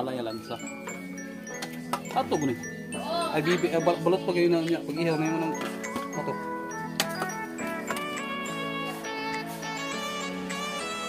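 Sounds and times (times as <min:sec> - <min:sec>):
background music with sustained notes: 0:00.0 - 0:11.0.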